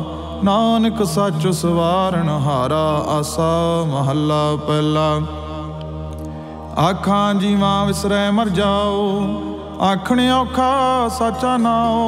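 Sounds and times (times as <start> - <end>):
man chanting melodically: 0.0 - 6.1, 6.7 - 12.0
steady low drone: 0.0 - 12.0.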